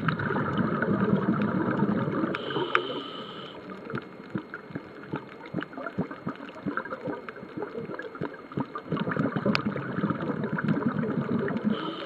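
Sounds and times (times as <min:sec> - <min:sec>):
underwater air bubbles rushing: 0:00.0 - 0:03.0, 0:03.6 - 0:12.0.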